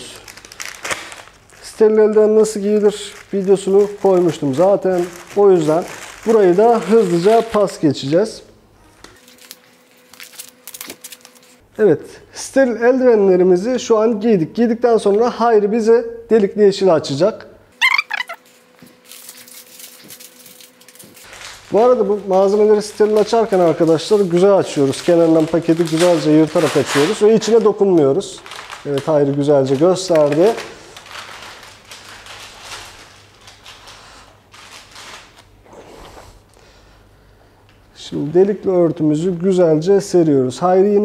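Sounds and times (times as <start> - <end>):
packaging crinkling as peeled open: 0.0 - 7.8, 9.1 - 11.6, 17.8 - 35.5
short high-pitched squeak: 17.8 - 18.4.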